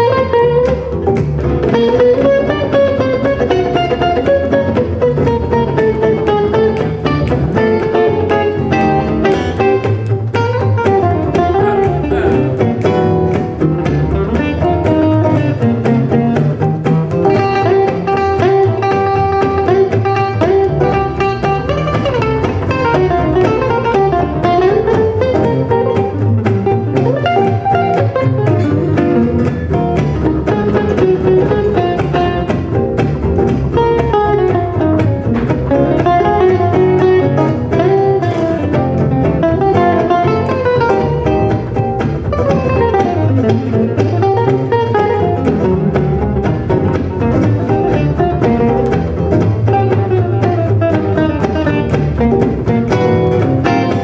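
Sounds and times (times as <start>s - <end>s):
acoustic guitars: 0.0s - 54.0s
double bass: 0.0s - 54.0s.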